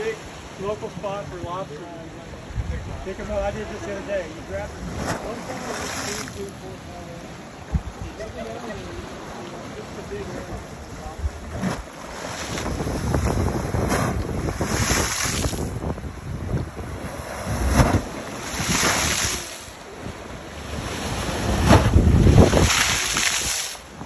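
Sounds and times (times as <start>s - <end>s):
sea waves against rocky shore: 0.0s - 24.0s
water rushing through blowhole: 0.0s - 24.0s.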